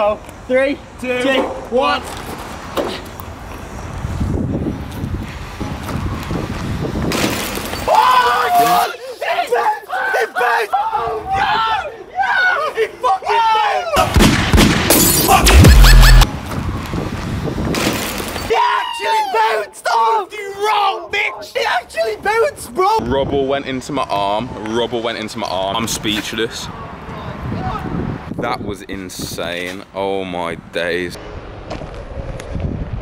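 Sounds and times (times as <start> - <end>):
rushing outdoor background: 0.0 - 18.8
men yelling and whooping: 7.8 - 14.2, 18.5 - 23.0
loud rushing crackling burst: 14.2 - 16.3.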